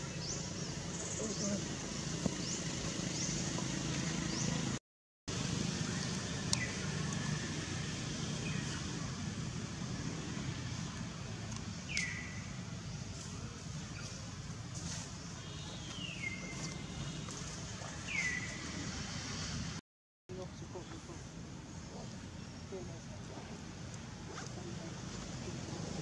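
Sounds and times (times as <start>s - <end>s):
forest background noise: 0.0s - 26.0s.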